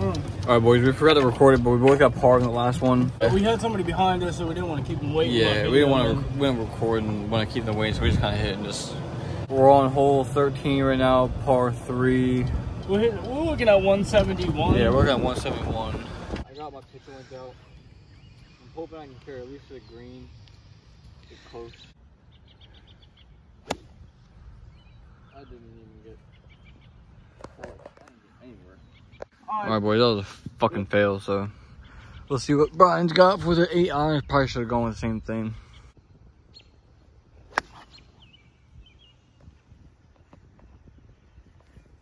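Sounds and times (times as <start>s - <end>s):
faint bird chirps: 16.4s - 20.6s, 21.2s - 27.4s, 34.1s - 39.6s
golf club hitting ball: 23.6s - 24.0s, 37.5s - 37.9s.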